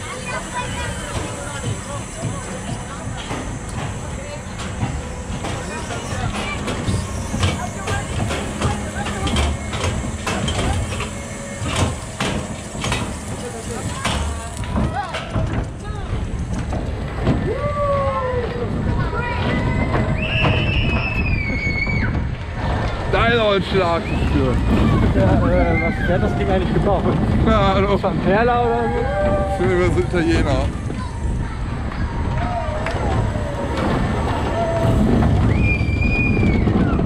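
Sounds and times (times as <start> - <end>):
clicks and rattles of ride car: 0.0 - 37.0
ride low rumble: 0.0 - 37.0
voices calling out: 28.2 - 37.0.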